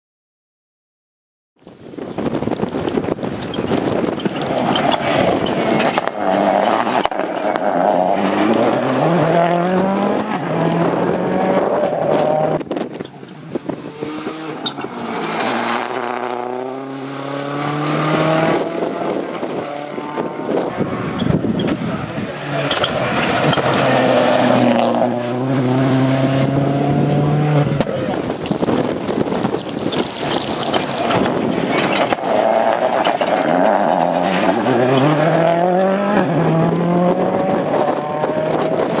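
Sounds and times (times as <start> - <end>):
rally car engine revving: 2.6 - 39.0.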